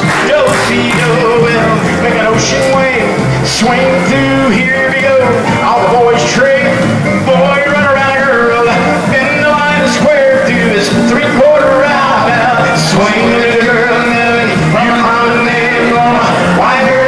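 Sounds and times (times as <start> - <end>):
backing music with guitar: 0.0 - 17.0
men singing into microphones: 0.0 - 17.0.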